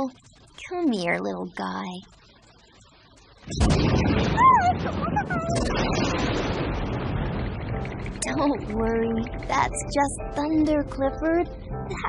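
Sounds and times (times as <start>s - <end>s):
thunder crack and rumble: 3.4s - 12.0s.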